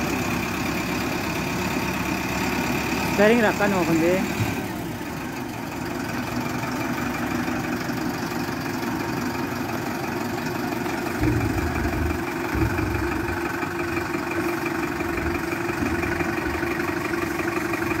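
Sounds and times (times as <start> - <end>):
diesel engine idling: 0.0 - 18.0
low rumbles: 10.4 - 18.0.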